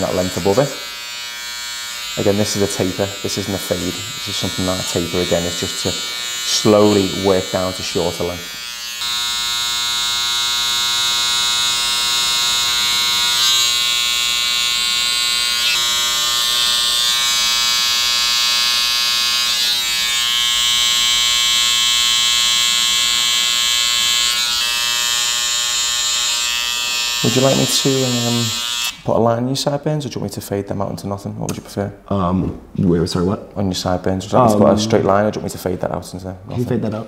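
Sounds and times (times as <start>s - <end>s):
electric hair clippers buzzing: 0.0s - 29.0s.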